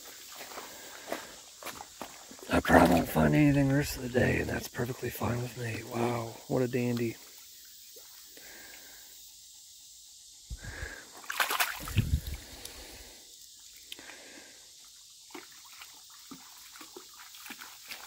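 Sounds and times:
creek water running: 0.0s - 9.5s, 10.5s - 18.0s
hand splashing in water: 11.2s - 12.8s.

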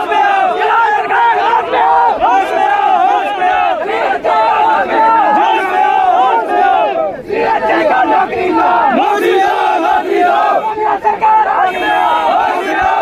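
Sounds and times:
crowd of men shouting: 0.0s - 13.0s.

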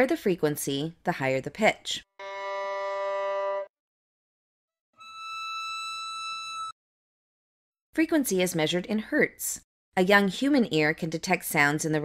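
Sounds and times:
high steady tone: 5.0s - 6.7s.

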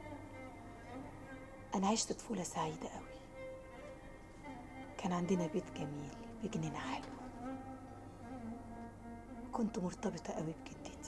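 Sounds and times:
soft bowed strings music: 0.0s - 11.0s.

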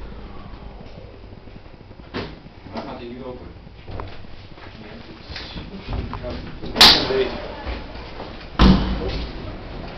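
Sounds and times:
lift doors banging: 8.6s - 9.3s.

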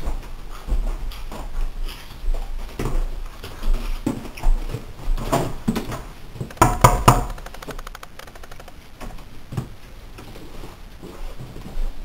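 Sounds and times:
knocking on door: 6.5s - 7.5s.

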